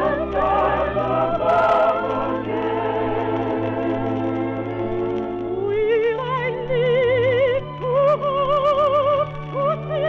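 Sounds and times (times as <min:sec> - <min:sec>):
musical accompaniment: 0:00.0 - 0:10.0
soprano singing with vibrato: 0:00.0 - 0:10.0.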